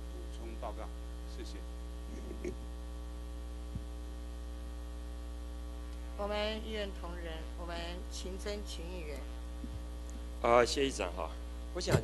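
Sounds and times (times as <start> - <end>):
electrical mains hum: 0.0 - 12.0
faint voice: 2.1 - 2.6.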